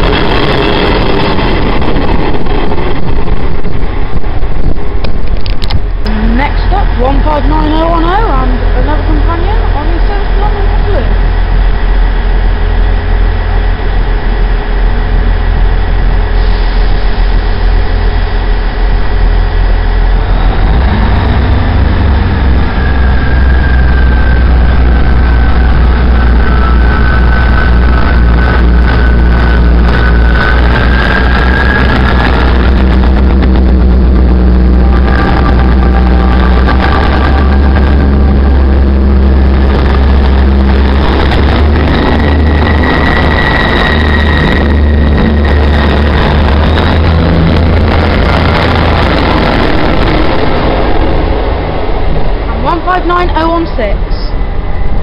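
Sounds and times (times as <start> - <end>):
high squeal from train: 0.0 - 3.7, 9.8 - 52.2
diesel train engines: 0.0 - 55.0.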